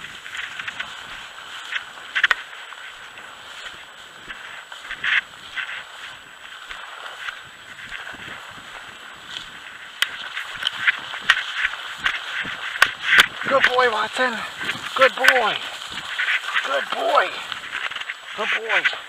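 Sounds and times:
footsteps through dry grass: 0:00.0 - 0:19.0.

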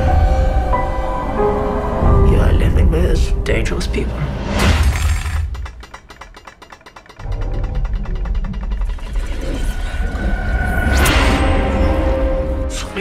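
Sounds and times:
fast mechanical clicks: 0:04.8 - 0:09.8
deep rumble: 0:07.2 - 0:12.8.

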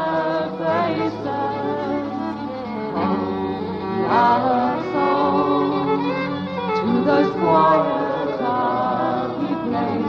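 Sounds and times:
fiddle playing: 0:00.0 - 0:10.0
acoustic guitar accompaniment: 0:02.8 - 0:10.0.

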